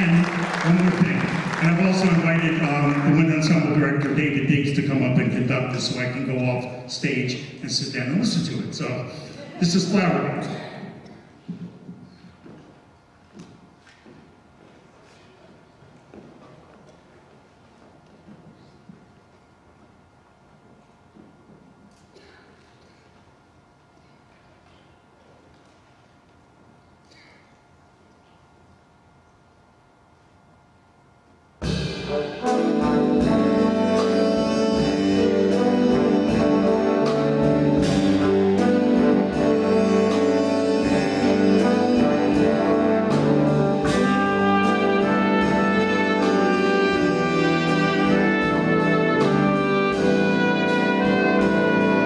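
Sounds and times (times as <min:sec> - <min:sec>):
jazz big band playing: 0:00.0 - 0:06.7, 0:31.6 - 0:52.0
faint footsteps on stage: 0:11.0 - 0:19.5, 0:20.6 - 0:23.3
slow sustained brass chords: 0:31.8 - 0:52.0.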